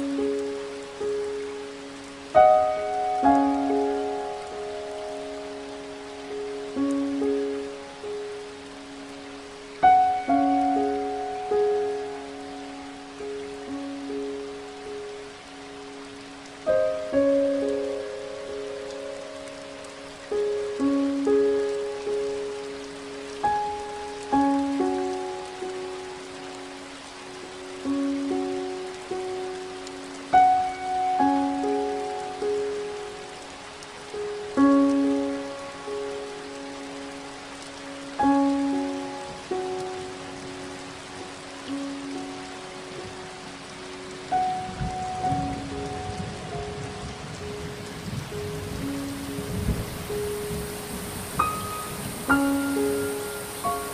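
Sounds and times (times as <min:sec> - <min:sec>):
gentle piano melody: 0:00.0 - 0:53.9
steady rain: 0:00.0 - 0:53.9.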